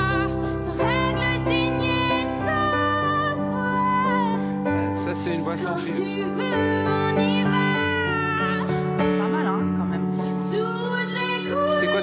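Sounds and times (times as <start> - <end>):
woman singing ballad: 0.0 - 4.8, 5.7 - 12.0
piano chords: 0.0 - 12.0.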